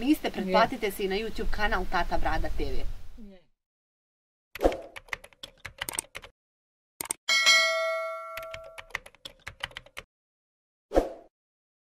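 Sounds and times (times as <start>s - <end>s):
keyboard typing clicks: 4.6s - 6.3s, 7.0s - 7.2s, 8.4s - 10.1s
bell-like ding: 7.3s - 8.9s.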